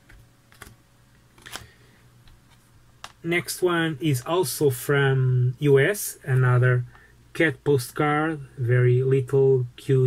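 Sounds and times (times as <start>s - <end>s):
postcards being handled: 0.0s - 3.2s.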